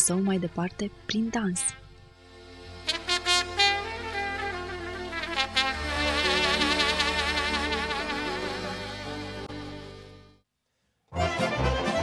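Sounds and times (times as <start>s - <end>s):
folk music on wind instruments: 2.8s - 10.0s, 11.2s - 12.0s.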